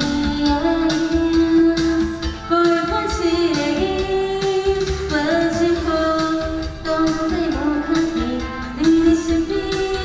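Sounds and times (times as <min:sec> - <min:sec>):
backing music over loudspeakers: 0:00.0 - 0:10.0
woman singing into microphone: 0:00.0 - 0:10.0.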